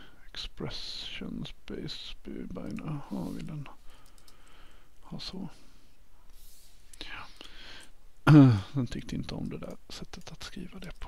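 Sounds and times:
man whispering: 0:00.1 - 0:03.9, 0:05.0 - 0:05.8, 0:07.0 - 0:07.5, 0:08.3 - 0:11.0
faint keyboard clicks: 0:02.6 - 0:04.6, 0:09.0 - 0:11.0.

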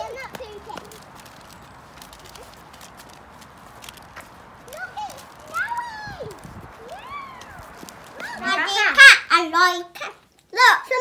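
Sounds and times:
children chattering: 0:00.0 - 0:11.0
girl whooping with glee: 0:05.7 - 0:08.5.

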